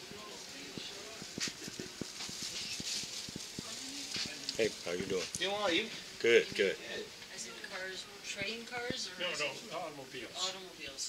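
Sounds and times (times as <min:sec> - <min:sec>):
background voices talking: 0:00.0 - 0:10.7.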